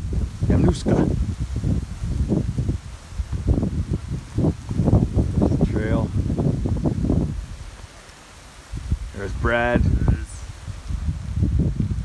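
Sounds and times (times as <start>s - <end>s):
leaves rustling: 0.0s - 12.0s
wind buffeting microphone: 0.0s - 12.0s.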